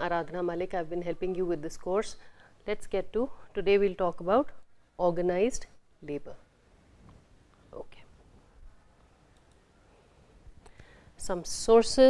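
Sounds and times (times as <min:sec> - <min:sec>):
soft clicks: 0:09.0 - 0:09.6.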